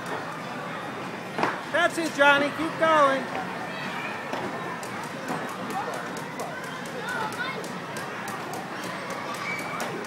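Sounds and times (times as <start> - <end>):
background chatter: 0.0 - 10.0
children's voices: 3.6 - 10.0.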